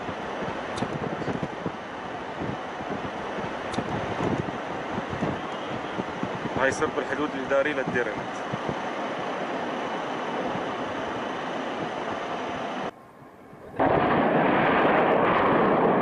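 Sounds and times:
distant blast roar: 0.0s - 16.0s
wind on microphone: 0.0s - 16.0s.

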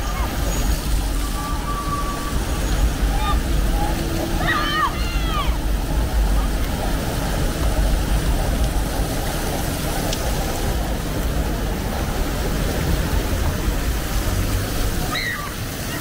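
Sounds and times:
fountain jets spraying water: 0.0s - 16.0s.

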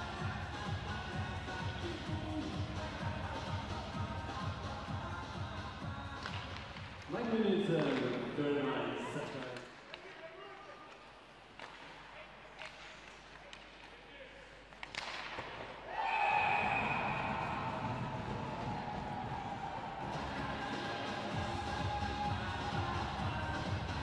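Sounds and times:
hockey sticks and puck clicking: 6.1s - 7.1s, 7.8s - 8.2s, 9.2s - 15.8s
loud arena din with tones: 15.1s - 24.0s.

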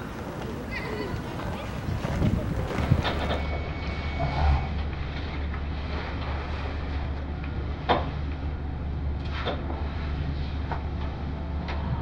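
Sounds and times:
faint voices: 0.0s - 3.4s
traffic rumble: 0.0s - 12.0s.

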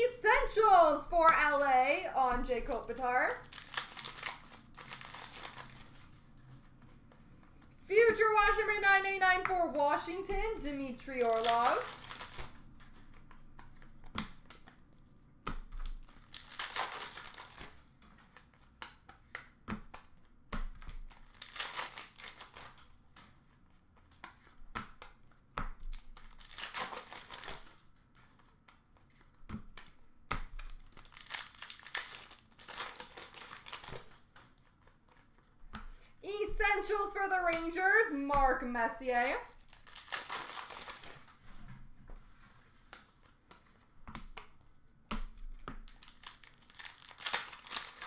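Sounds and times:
card wrappers tearing and crinkling: 2.7s - 6.2s, 10.6s - 13.1s, 15.8s - 18.0s, 20.8s - 22.9s, 25.9s - 27.8s, 30.6s - 35.3s, 39.5s - 41.4s, 45.8s - 48.0s.

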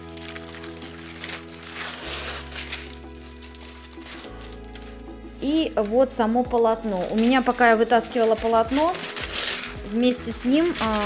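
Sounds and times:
background music: 0.0s - 11.0s
plastic bag crinkling: 0.0s - 11.0s.

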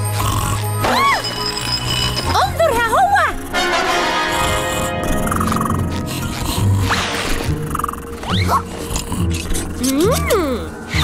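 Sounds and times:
deep growling snores: 0.0s - 0.8s, 3.1s - 9.8s
cartoon background music: 0.0s - 11.0s.

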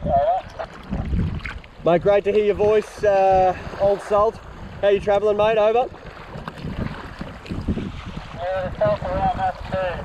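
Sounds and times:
wind buffeting microphone: 0.0s - 10.0s
water sloshing around kayak: 0.1s - 10.0s.

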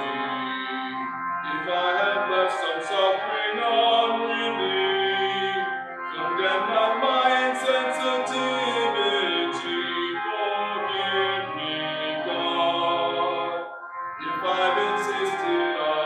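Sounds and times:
voices singing a hymn: 0.0s - 16.0s.

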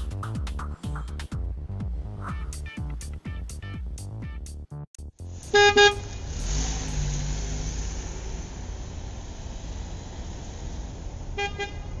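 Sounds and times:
horn honks: 5.4s - 6.3s, 11.4s - 12.0s.

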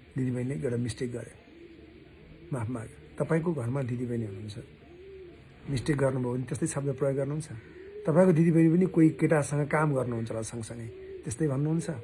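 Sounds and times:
bird cooing: 0.0s - 12.0s
man talking: 0.1s - 1.4s, 2.5s - 4.7s, 5.6s - 12.0s.

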